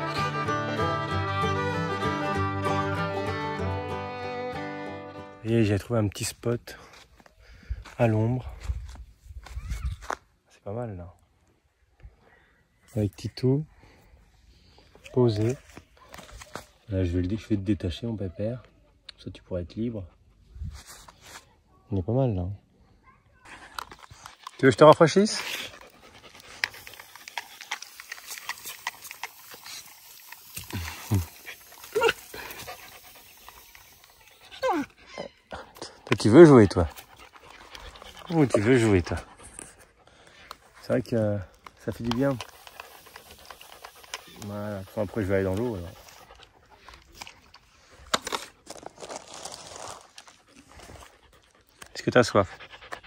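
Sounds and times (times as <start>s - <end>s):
puppy panting: 24.3s - 47.7s, 50.3s - 53.0s.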